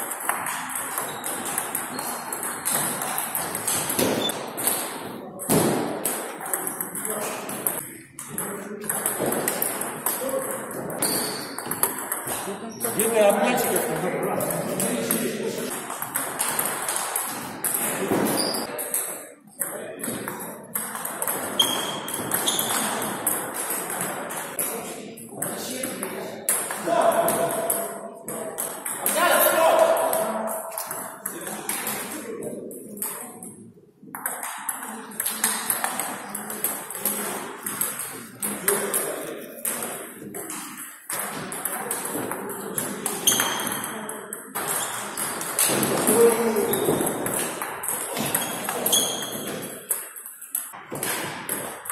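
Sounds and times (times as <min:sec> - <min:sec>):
table tennis ball clicking and bouncing: 0:00.0 - 0:29.2, 0:32.9 - 0:51.9
voices in a hall: 0:00.0 - 0:51.9.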